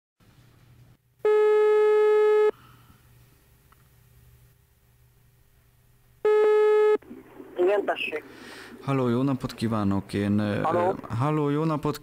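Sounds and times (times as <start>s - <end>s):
telephone ringback tone: 1.2s - 2.5s, 6.3s - 7.0s.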